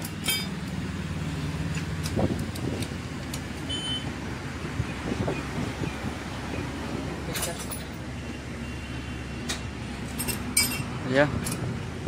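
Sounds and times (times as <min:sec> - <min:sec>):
metal hand tools clinking: 0:00.0 - 0:00.7, 0:10.1 - 0:11.7
engine running: 0:00.0 - 0:12.0.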